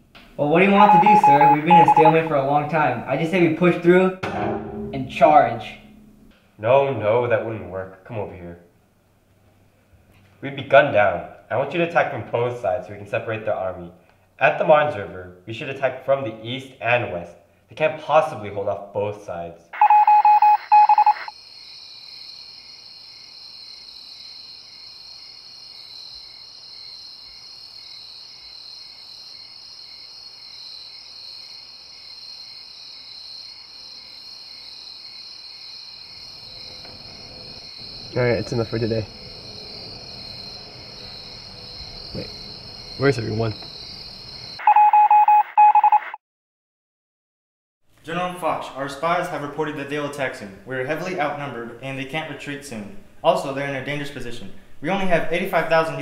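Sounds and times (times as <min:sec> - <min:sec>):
loud electronic beeps: 0:00.7 - 0:02.2, 0:19.8 - 0:21.3, 0:44.6 - 0:46.2
crickets chirping: 0:21.3 - 0:44.6.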